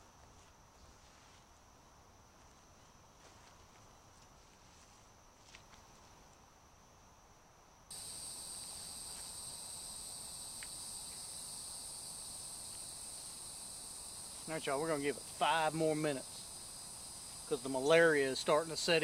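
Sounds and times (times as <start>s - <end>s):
faint ticks: 7.9s - 11.4s, 12.6s - 13.4s
high-pitched insect chorus: 7.9s - 19.0s.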